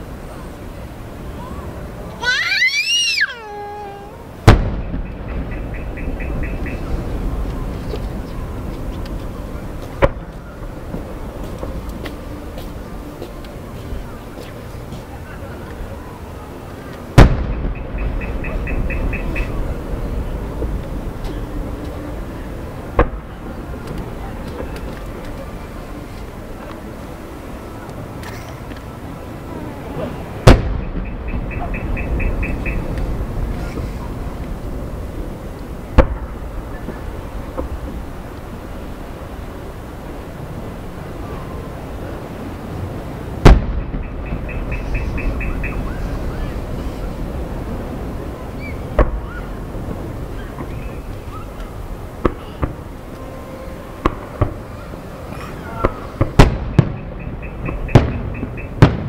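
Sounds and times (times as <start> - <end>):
firework shell boom: 4.4 - 5.6
firework bang: 4.4 - 8.1, 17.2 - 19.4, 22.9 - 23.3, 30.4 - 33.9, 35.9 - 38.0, 43.4 - 45.9, 55.8 - 59.0
low rumbling echo: 4.4 - 14.8, 17.2 - 28.1, 29.2 - 59.0.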